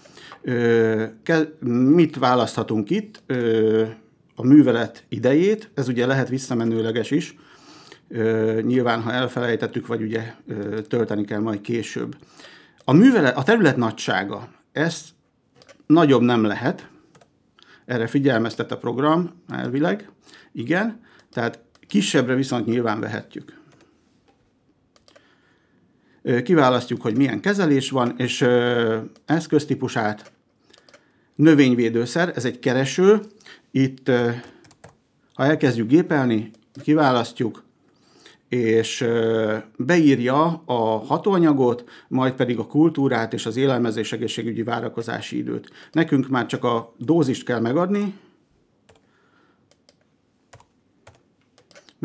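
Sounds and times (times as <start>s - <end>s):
faint computer clicks: 15.6s - 15.9s, 25.0s - 25.3s, 30.1s - 31.1s, 49.7s - 52.0s
keyboard keystrokes: 15.6s - 15.9s, 34.6s - 35.0s.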